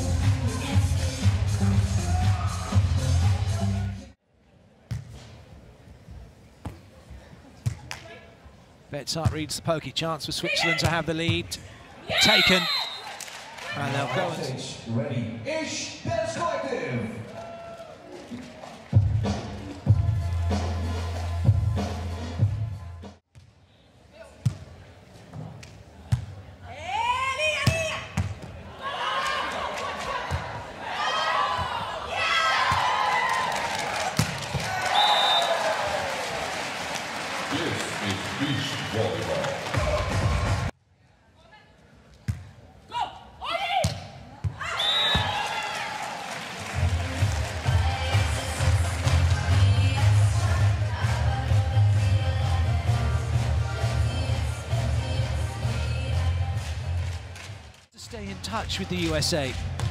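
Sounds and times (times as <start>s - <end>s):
background music with a beat: 0.0s - 3.9s, 19.0s - 23.2s, 46.8s - 57.1s
people shouting and cheering: 0.0s - 4.1s, 10.4s - 11.2s, 12.0s - 14.6s, 17.1s - 18.8s, 26.6s - 40.7s, 44.5s - 51.5s.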